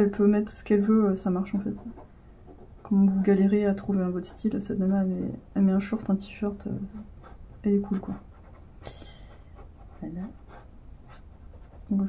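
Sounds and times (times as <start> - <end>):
pen scratching on paper: 1.4 - 5.0, 6.8 - 12.0
brief breath: 8.8 - 9.5.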